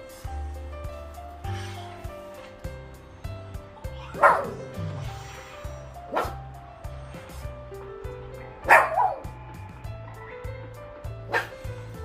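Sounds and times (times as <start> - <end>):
music with low beat: 0.0 - 12.0
puppy yipping and barking: 4.0 - 4.7, 8.7 - 9.2.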